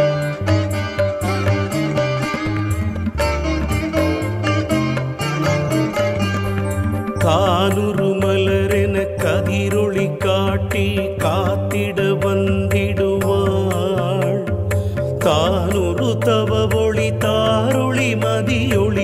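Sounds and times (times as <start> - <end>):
instrumental accompaniment: 0.0 - 19.0
steady low bass line: 0.0 - 19.0.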